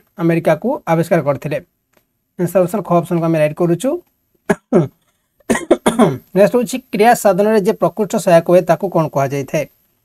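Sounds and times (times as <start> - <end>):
man speaking: 0.0 - 1.7, 2.4 - 4.0, 5.8 - 9.7.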